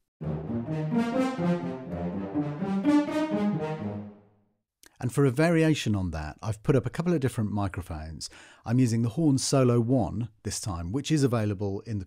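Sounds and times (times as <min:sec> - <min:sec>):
staccato horn chords: 0:00.0 - 0:04.3.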